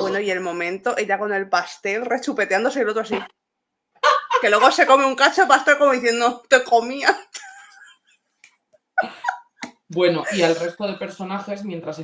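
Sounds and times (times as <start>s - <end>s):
woman's voice: 0.0s - 3.3s, 4.4s - 7.8s, 10.3s - 10.7s.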